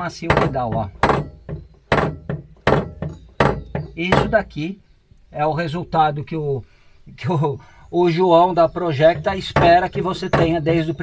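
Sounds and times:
pedal thunking against stops: 0.3s - 4.5s, 9.0s - 11.0s.

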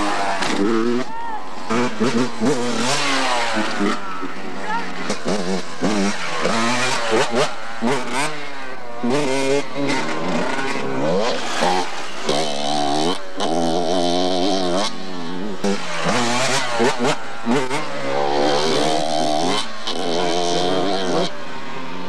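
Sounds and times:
dirt bike engines revving: 0.0s - 22.0s.

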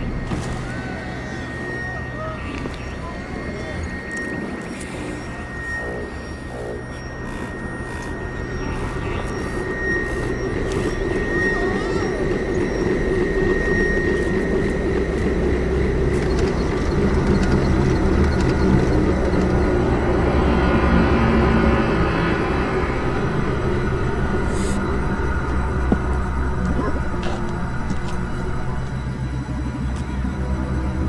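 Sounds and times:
thin high tone: 0.0s - 14.6s
deep rumble: 0.0s - 31.0s
low droning tones: 0.0s - 31.0s.

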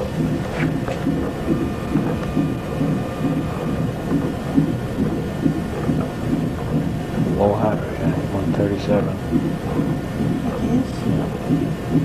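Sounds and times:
fetal heartbeat on doppler: 0.0s - 12.0s.

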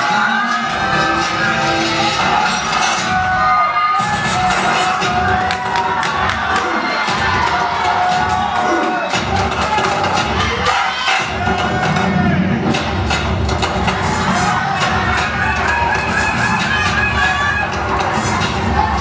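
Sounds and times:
audience cheering and shouting: 0.0s - 19.0s
loud music with heavy bass beat: 0.0s - 19.0s.

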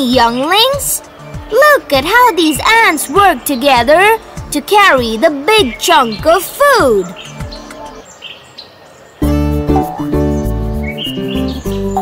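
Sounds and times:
faint birds chirping: 0.0s - 12.0s
soft jungle ambience: 0.0s - 12.0s.

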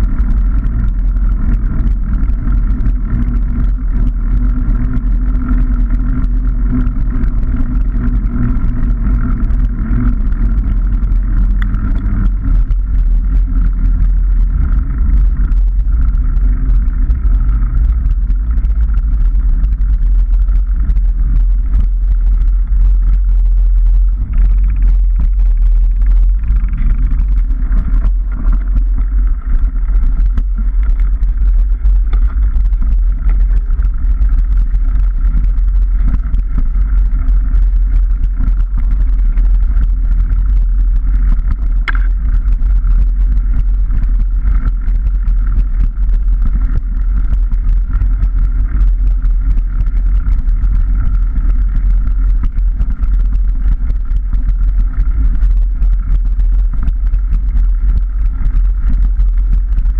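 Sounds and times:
bike clicks and rattles: 0.0s - 59.9s
steady hum: 0.0s - 59.9s
tyre rumble on rough track: 0.0s - 59.9s
wind buffeting microphone: 0.0s - 59.9s.

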